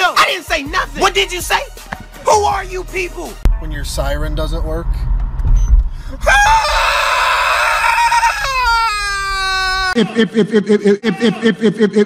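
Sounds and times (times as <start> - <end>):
low rumble of car: 3.5 - 7.0.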